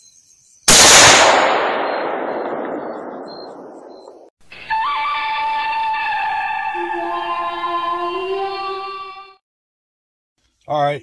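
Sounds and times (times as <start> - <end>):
rifle shot echoing: 0.7 - 4.3
music with held tones: 4.6 - 9.4.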